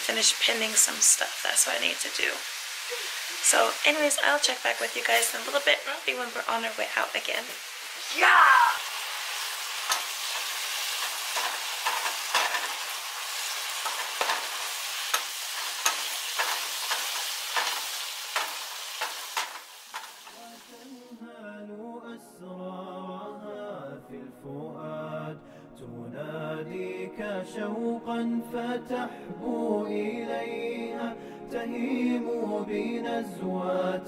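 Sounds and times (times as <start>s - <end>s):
meat sizzling in a frying pan: 0.0s - 21.0s
unaccompanied vocal singing: 20.2s - 34.0s.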